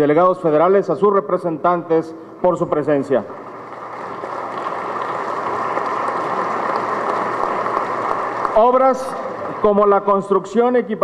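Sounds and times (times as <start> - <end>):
audience applauding: 3.4 - 10.2.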